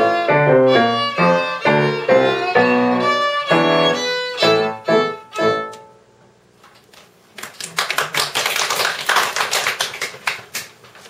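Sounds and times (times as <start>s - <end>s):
audience clapping: 7.4s - 10.8s.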